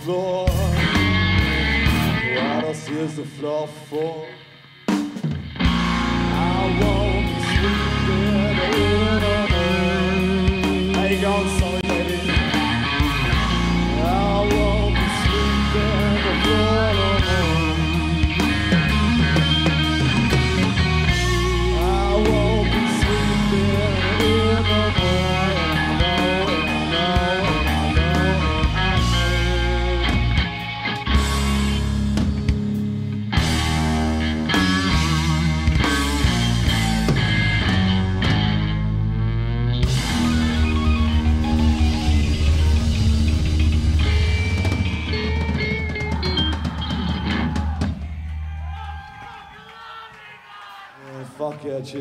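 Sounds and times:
electric guitar lead with bent notes: 0.0 - 48.6
blues-rock band playing: 0.0 - 48.9
drums hitting hard: 4.9 - 38.8, 39.8 - 49.2.

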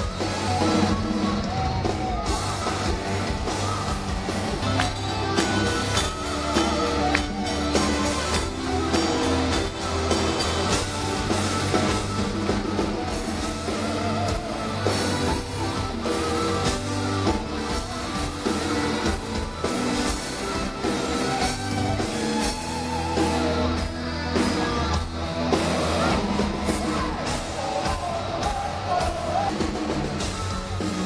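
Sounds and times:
drum kit and bass: 0.0 - 31.0
electric guitar: 0.0 - 31.0
live hard rock band: 0.0 - 31.0.

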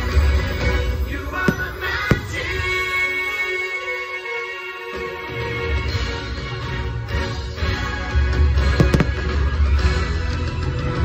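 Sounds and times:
fireworks show music: 0.0 - 11.0
sharp firework bangs: 1.3 - 2.8.

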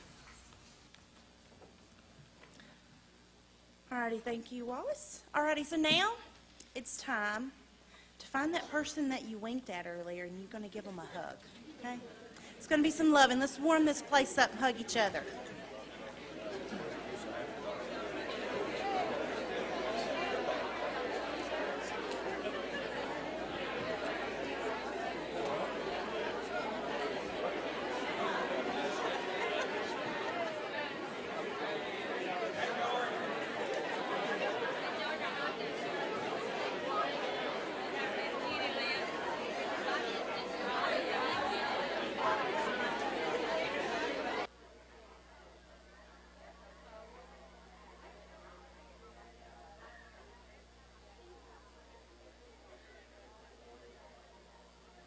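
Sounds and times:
babble of many voices chatting: 8.4 - 55.0.

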